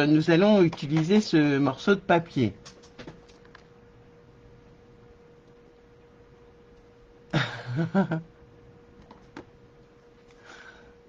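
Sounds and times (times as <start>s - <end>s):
faint electrical whine: 0.0s - 11.0s.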